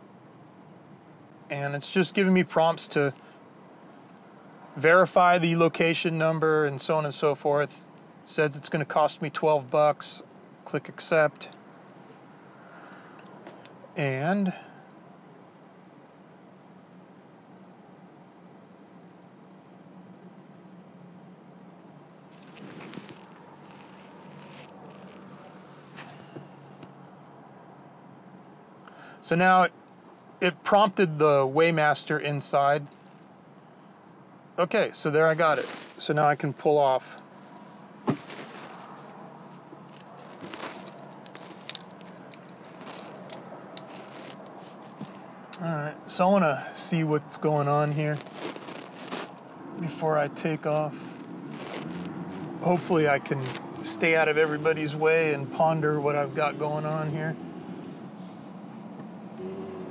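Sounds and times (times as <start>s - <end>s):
faint rustling: 22.2s - 27.0s, 35.0s - 45.6s, 47.3s - 59.3s.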